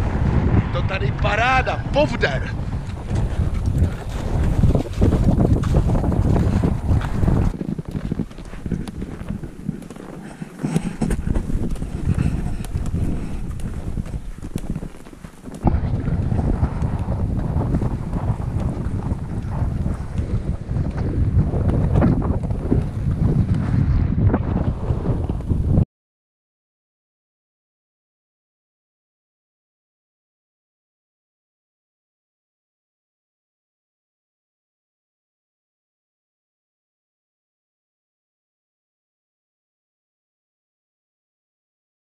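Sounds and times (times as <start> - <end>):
wind blowing across microphone: 0.0 - 25.8.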